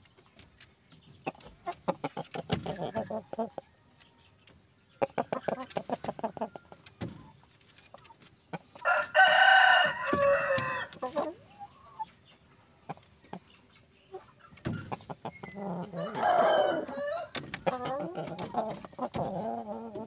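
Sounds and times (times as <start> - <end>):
rooster clucking: 8.6 - 12.1, 14.7 - 20.0
rooster crowing: 8.8 - 10.9, 16.0 - 17.4.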